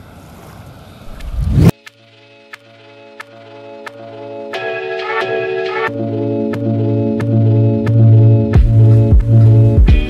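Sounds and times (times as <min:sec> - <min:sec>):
loud low rumble: 0:01.0 - 0:01.7
wind buffeting microphone: 0:01.0 - 0:01.7
music with ticking beat: 0:01.8 - 0:10.0.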